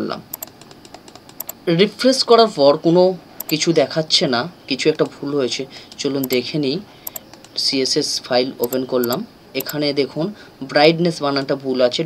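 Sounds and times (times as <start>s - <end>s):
computer mouse clicks: 0.3s - 1.6s, 3.4s - 3.6s, 5.9s - 7.6s, 8.6s - 9.8s.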